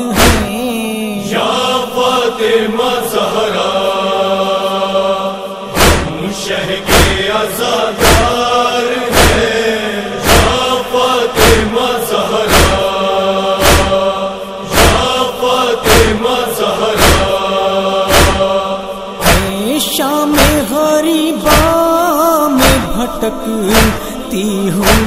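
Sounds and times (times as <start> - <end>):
chorus chanting a wordless drone: 0.0 - 25.0
chest-beating strokes: 5.6 - 7.4, 8.0 - 8.5, 9.1 - 9.6, 10.2 - 11.7, 12.3 - 19.6, 22.6 - 23.0, 23.7 - 24.2.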